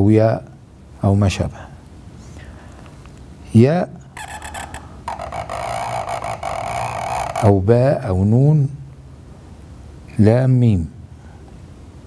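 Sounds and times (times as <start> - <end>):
pen scratching across paper: 4.2 - 7.5.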